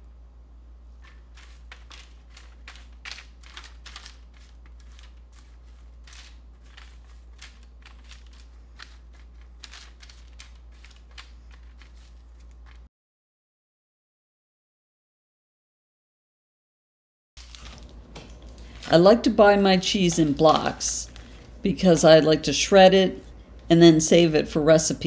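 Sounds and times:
paper rustling: 0.9s - 12.9s, 17.4s - 22.0s.

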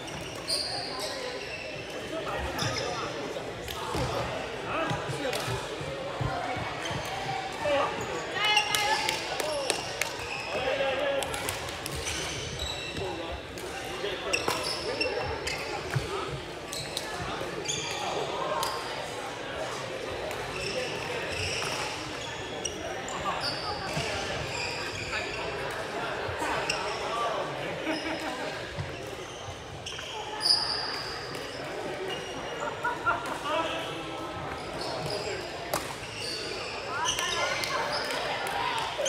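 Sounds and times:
shoes squeaking on court: 0.0s - 3.2s, 4.9s - 9.7s, 11.9s - 18.8s, 27.8s - 32.9s, 34.4s - 38.4s
people chattering: 0.0s - 39.0s.

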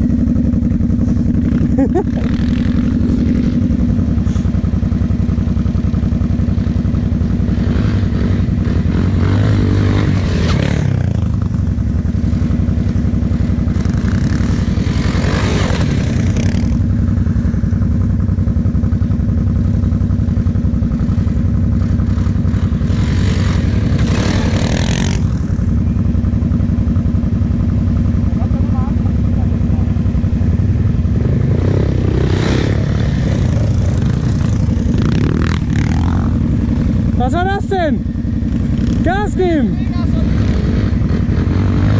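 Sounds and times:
quad engine idling: 0.0s - 41.9s.

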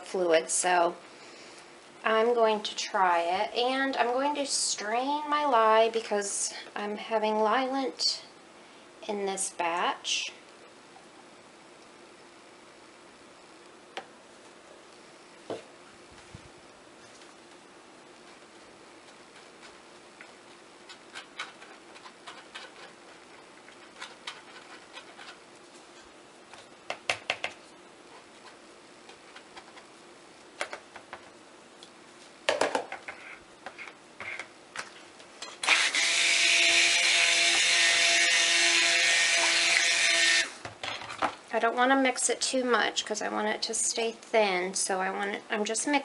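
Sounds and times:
stick blender motor hum: 35.6s - 40.7s.

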